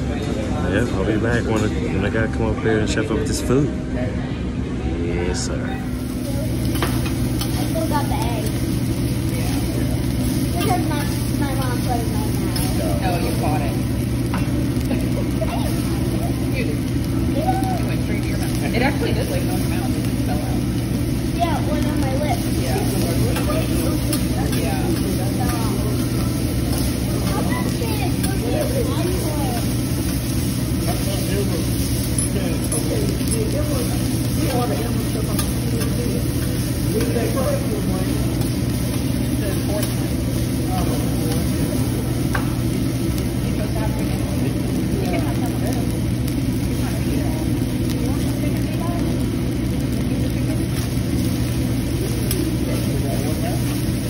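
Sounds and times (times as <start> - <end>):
murmur of voices: 0.0 - 54.0
ventilation low drone: 0.0 - 54.0.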